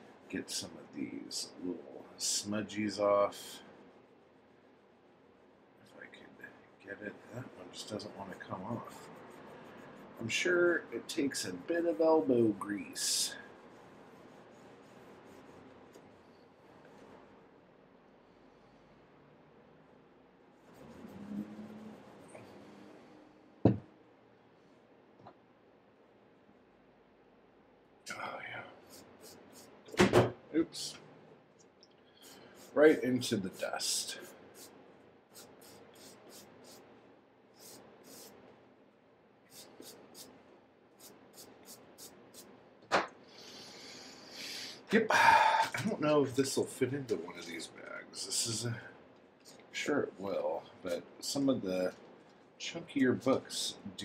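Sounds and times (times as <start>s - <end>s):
brushing a book cover: 7.1s - 17.3s, 20.6s - 22.9s, 28.8s - 29.8s, 32.2s - 36.9s, 37.6s - 38.4s, 39.5s - 40.4s, 41.0s - 42.5s
knock: 23.7s - 23.9s, 29.9s - 30.4s.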